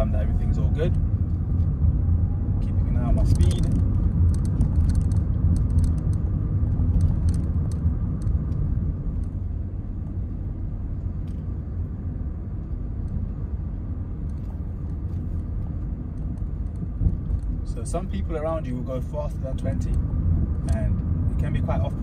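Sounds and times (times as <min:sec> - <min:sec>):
car engine and road rumble: 0:00.0 - 0:22.0.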